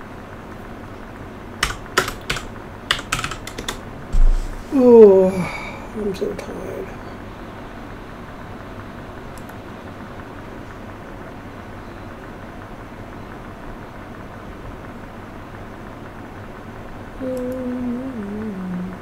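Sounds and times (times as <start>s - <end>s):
electric fan running: 0.0s - 19.0s
faint click: 9.3s - 9.6s.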